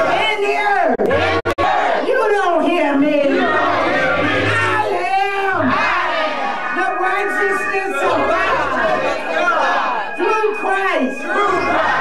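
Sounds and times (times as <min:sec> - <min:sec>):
many voices talking and calling: 0:00.0 - 0:12.0
woman's voice: 0:02.0 - 0:03.5, 0:06.7 - 0:09.1, 0:10.2 - 0:11.6.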